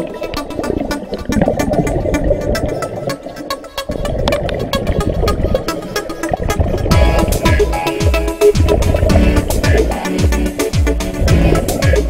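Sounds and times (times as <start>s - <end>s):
music with quick steady beat: 4.3s - 12.0s
dense low rumble: 6.9s - 7.8s.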